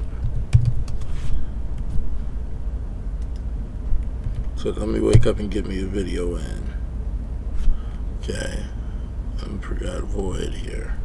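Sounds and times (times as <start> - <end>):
steady low rumble: 0.0 - 11.0
keyboard key presses: 0.2 - 1.0.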